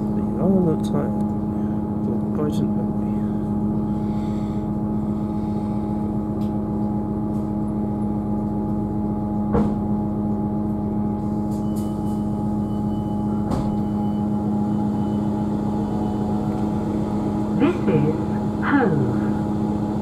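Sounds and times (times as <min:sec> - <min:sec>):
train diesel engine idling: 0:00.0 - 0:20.0.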